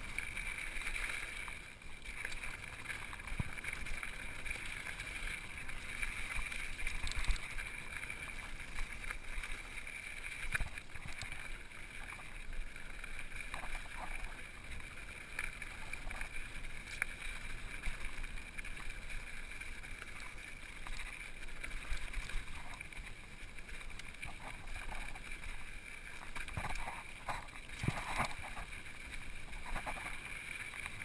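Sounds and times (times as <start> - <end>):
bike tyres rolling on gravel: 0.0 - 31.0
bike knocking and rattling on stones: 26.3 - 28.7.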